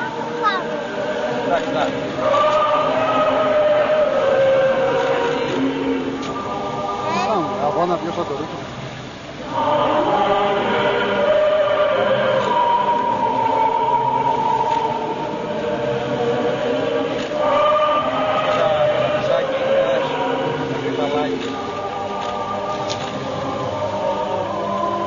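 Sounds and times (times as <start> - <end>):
voices chanting long held notes: 0.0 - 8.6, 9.2 - 25.0.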